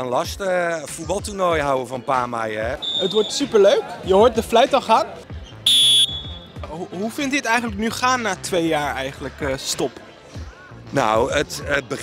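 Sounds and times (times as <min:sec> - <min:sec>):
referee's whistle blast: 0:02.8 - 0:03.6, 0:05.6 - 0:06.5.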